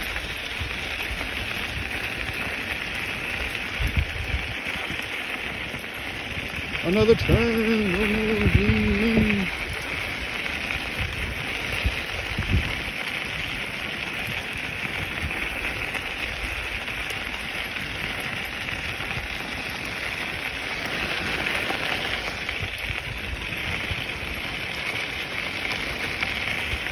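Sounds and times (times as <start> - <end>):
wheels rolling over gravel: 0.0 - 26.9.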